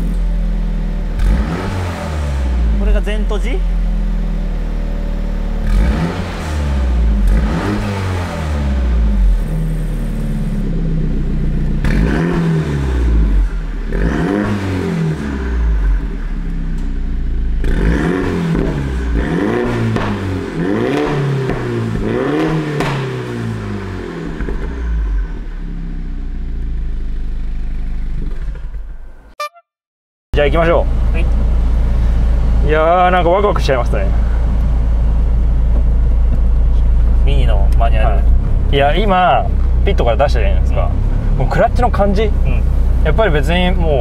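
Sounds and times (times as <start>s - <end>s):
car engine revving: 0.0s - 29.0s, 30.4s - 44.0s
car engine idling: 0.0s - 29.3s, 30.4s - 44.0s.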